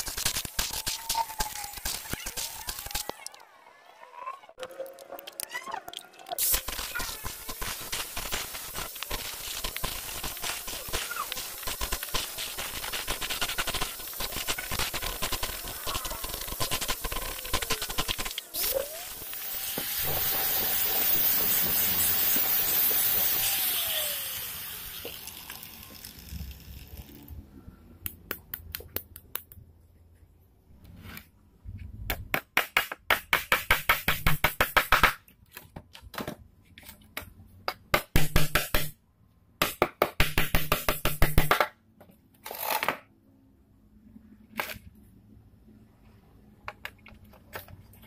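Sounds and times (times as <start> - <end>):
grinder disc hiss: 6.4 - 27.4
angle grinder whining: 15.1 - 26.3.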